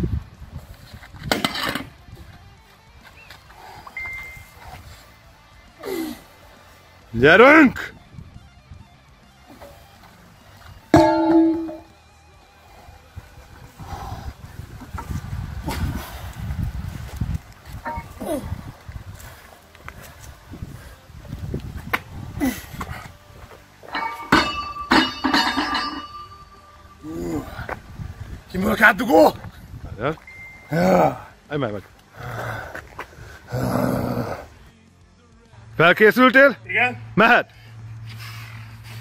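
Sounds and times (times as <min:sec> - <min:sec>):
weight plate clanging on pavement: 0:01.2 - 0:02.0, 0:10.6 - 0:12.0, 0:17.8 - 0:18.4, 0:23.8 - 0:27.3
guitar music: 0:01.8 - 0:12.8
barbell dropped with ringing metal: 0:10.9 - 0:11.9, 0:23.9 - 0:26.8.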